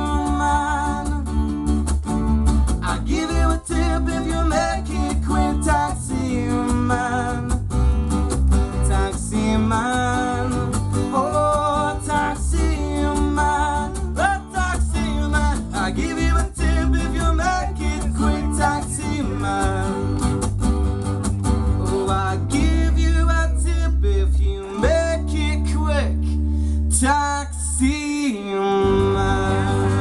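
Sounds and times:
person singing: 0.0s - 1.3s, 2.8s - 7.6s, 8.9s - 20.2s, 27.0s - 30.0s
electric bass line: 0.0s - 28.0s, 28.8s - 30.0s
acoustic guitars strummed: 0.0s - 30.0s.

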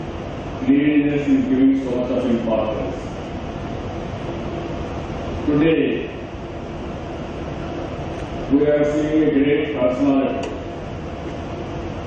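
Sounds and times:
rumbling hall background noise: 0.0s - 12.0s.

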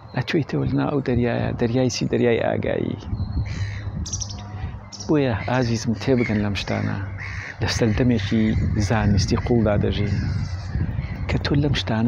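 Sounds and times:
bird calling: 3.0s - 11.6s.

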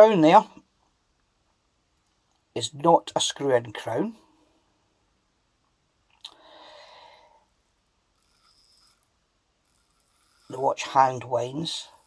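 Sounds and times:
soft rush of breath: 6.4s - 7.6s.

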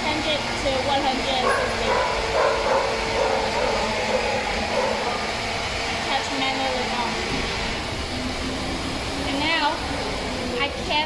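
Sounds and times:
factory machinery humming: 0.0s - 11.0s.

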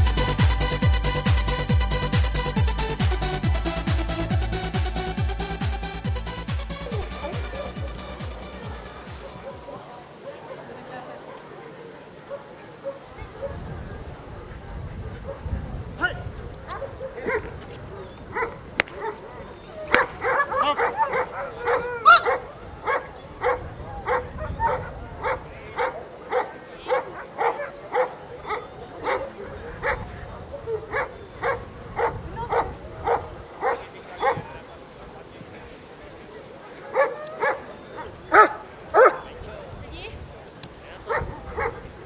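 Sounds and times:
dog barking: 9.1s - 10.6s, 12.2s - 13.6s, 15.2s - 15.5s, 16.7s - 34.5s, 36.9s - 39.3s, 41.1s - 41.9s.

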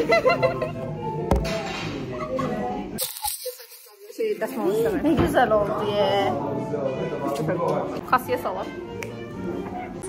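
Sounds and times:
laughter: 0.0s - 1.0s.

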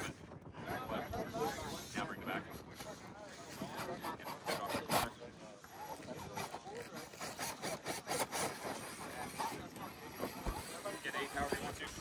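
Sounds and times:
toy car motor whirring: 5.9s - 12.0s.

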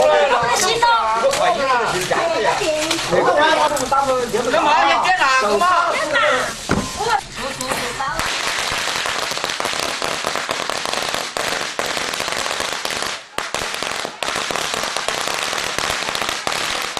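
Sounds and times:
firecrackers banging rapidly: 7.8s - 16.9s.

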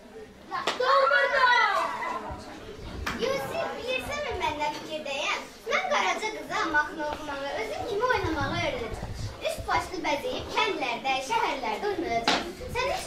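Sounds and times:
children speaking and calling out: 0.5s - 13.0s.

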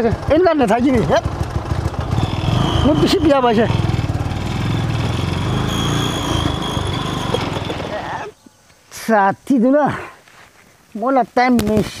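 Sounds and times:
motorcycle engine idling: 0.0s - 7.9s.

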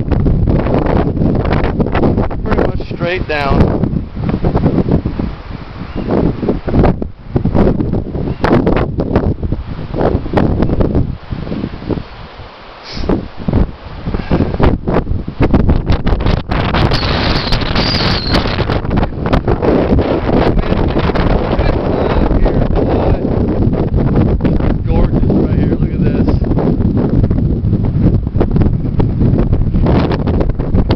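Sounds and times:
wind buffeting microphone: 0.0s - 30.9s.

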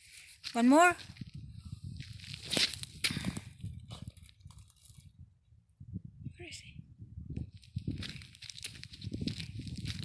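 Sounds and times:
footsteps on gravel: 0.0s - 5.0s, 7.5s - 10.0s.

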